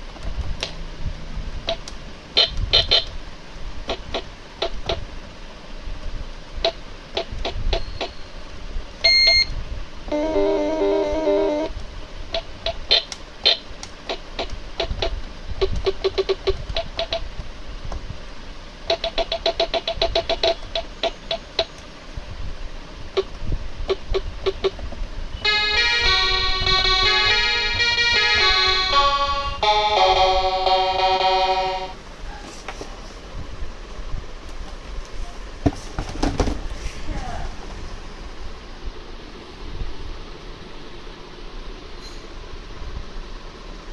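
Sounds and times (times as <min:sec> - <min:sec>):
electronic keyboard tune: 0:01.6 - 0:03.1, 0:10.1 - 0:11.7, 0:25.4 - 0:32.0.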